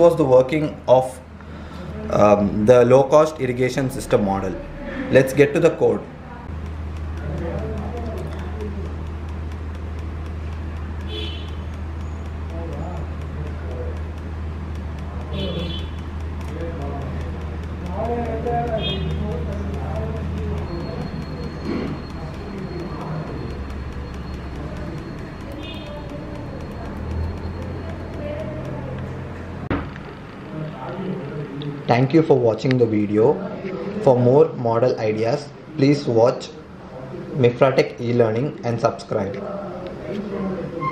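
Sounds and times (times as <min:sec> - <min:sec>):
steady low hum: 0:03.3 - 0:31.7
faint ticks: 0:06.5 - 0:29.5
sharp click: 0:06.5 - 0:30.5.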